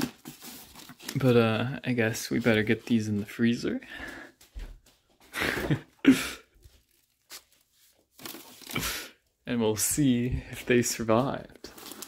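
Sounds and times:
plastic packages rustling: 0.0 - 3.4, 6.6 - 9.0, 10.7 - 12.0.

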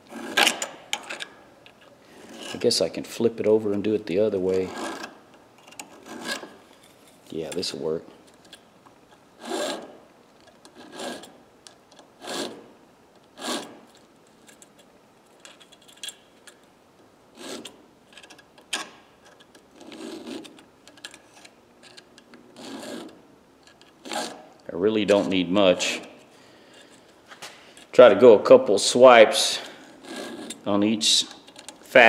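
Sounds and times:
hand file scraping steel: 2.2 - 2.8, 4.6 - 5.2, 5.9 - 6.6, 9.4 - 10.0, 10.7 - 11.4, 12.2 - 12.7, 13.4 - 13.9, 17.4 - 17.8, 22.6 - 23.2, 24.0 - 24.5, 29.6 - 30.7.

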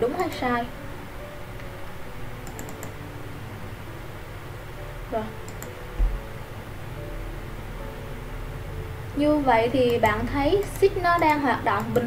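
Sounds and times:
steady low hum: 0.0 - 12.0
computer mouse clicking: 0.2 - 0.4, 2.4 - 3.0, 5.4 - 5.8, 9.8 - 12.0.

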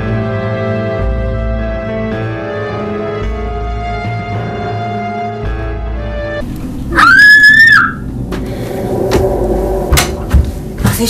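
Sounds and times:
eerie film music: 0.0 - 10.9
child screaming: 6.9 - 8.1.

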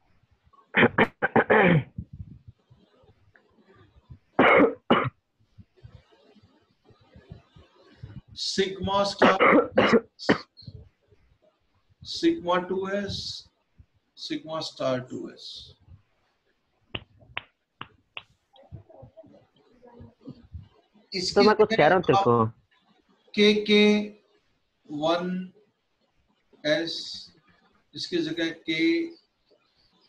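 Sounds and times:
person coughing: 0.8 - 2.0, 9.2 - 10.5
stylus tapping on tablet: 17.0 - 18.3.

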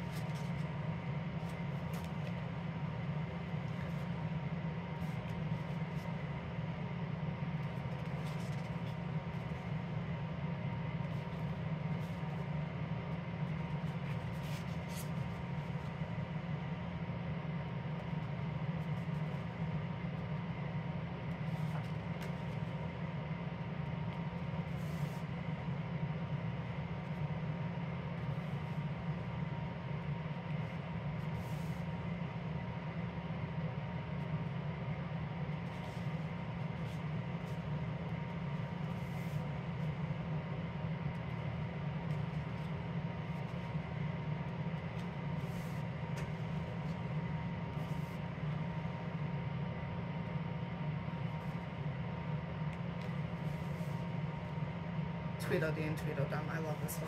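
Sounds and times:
low background hum: 0.0 - 57.0.

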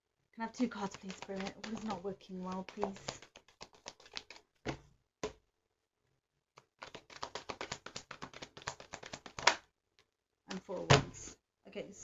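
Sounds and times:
cards being shuffled: 0.6 - 5.4, 6.6 - 9.6.

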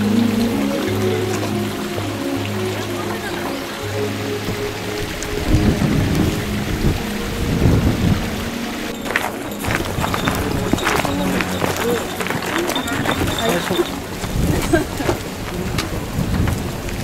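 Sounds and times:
faint voices: 0.0 - 7.2, 8.3 - 16.9
background music: 0.0 - 17.0
wind buffeting microphone: 3.4 - 17.0.

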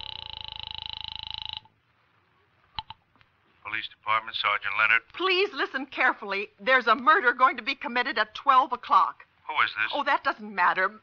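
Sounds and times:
telephone bell ringing: 0.0 - 1.7.

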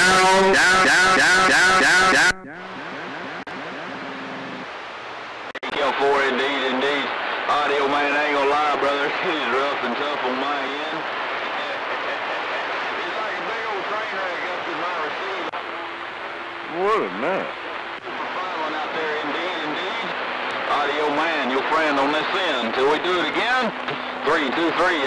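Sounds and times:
garbled voices over radio: 0.0 - 4.0
radio static hiss: 0.0 - 25.0.

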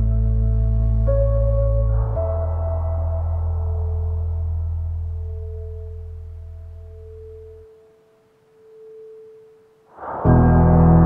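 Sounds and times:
low sine drone: 0.0 - 11.0
mid-pitched sine tone: 0.0 - 11.0.

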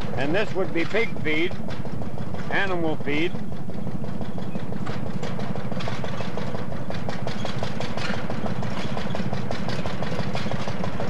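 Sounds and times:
mill machinery humming: 0.0 - 11.0.

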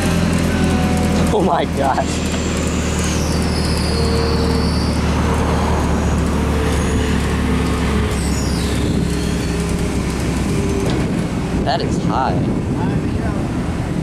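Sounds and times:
forklift engine running: 0.0 - 14.0.

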